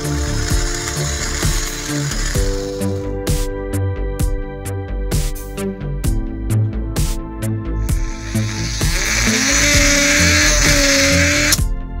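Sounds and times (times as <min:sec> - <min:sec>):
toy motor whirring: 0:00.0 - 0:03.0, 0:08.0 - 0:11.6
background music: 0:00.0 - 0:12.0.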